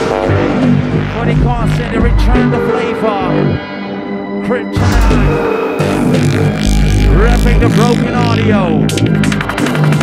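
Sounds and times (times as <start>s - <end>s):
electronic dance music: 0.0s - 3.4s, 4.8s - 10.0s
drum and bass beat: 0.1s - 3.3s, 4.7s - 10.0s.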